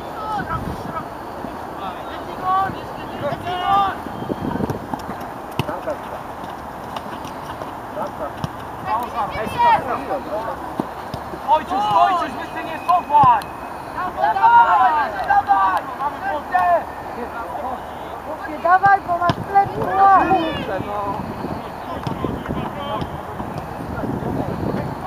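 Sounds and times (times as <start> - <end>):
voices shouting short calls: 11.4 - 23.8.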